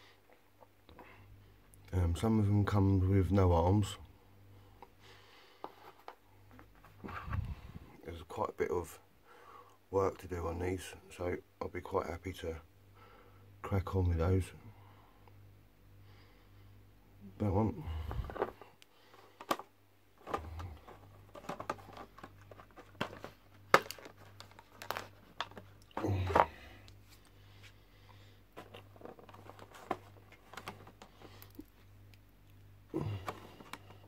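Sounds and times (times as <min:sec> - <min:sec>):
plastic packaging crinkling: 0:20.2 - 0:26.8, 0:28.6 - 0:31.8.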